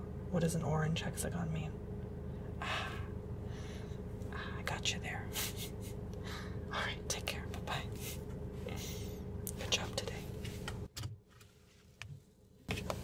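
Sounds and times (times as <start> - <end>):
car engine idling hum: 0.0 - 11.0, 11.7 - 13.0
man whispering: 4.3 - 5.4, 6.7 - 8.8, 9.5 - 10.3.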